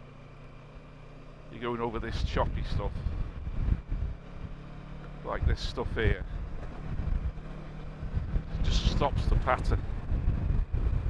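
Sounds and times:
motorcycle engine running: 0.0s - 11.0s
wind rumble on microphone: 2.0s - 11.0s.

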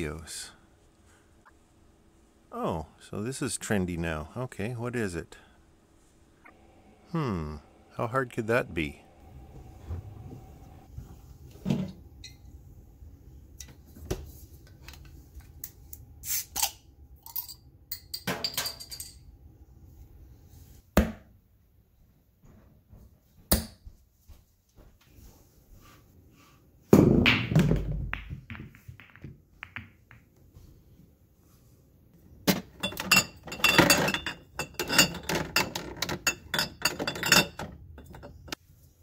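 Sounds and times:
glass bottles clinking: 32.5s - 38.6s.

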